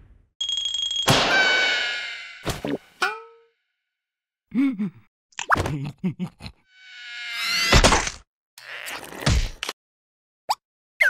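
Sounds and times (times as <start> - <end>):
buzzing whir rising in pitch: 6.7 - 7.8.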